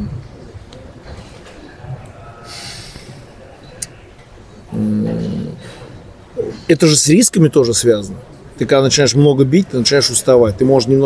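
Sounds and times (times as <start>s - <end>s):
man breathing out through nose: 2.5s - 3.2s.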